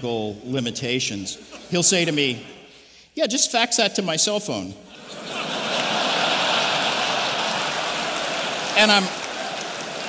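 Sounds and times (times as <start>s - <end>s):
audience laughing: 4.9s - 10.0s
audience clapping: 5.2s - 10.0s.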